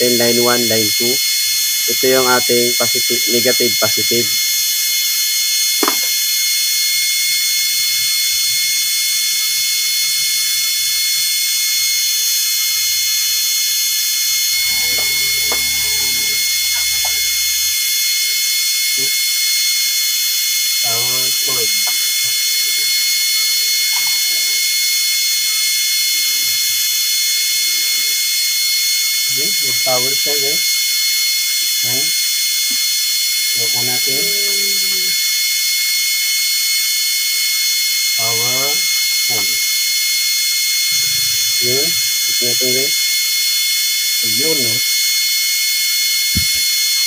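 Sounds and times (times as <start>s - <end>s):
high-pitched hiss with whining tones: 0.0s - 47.0s.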